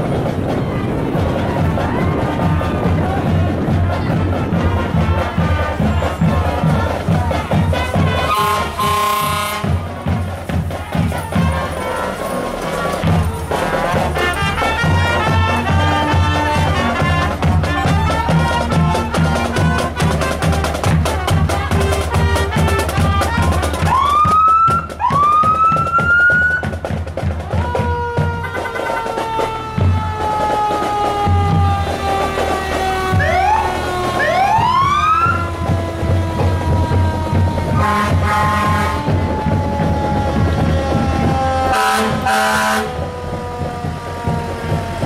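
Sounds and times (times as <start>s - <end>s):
fire truck siren wailing: 0.0s - 26.8s, 27.4s - 45.0s
marching drumline cadence: 0.0s - 45.0s.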